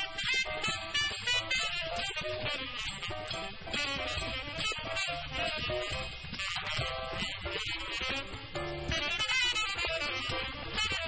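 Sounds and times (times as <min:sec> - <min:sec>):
jazz quartet playing: 0:00.0 - 0:11.0.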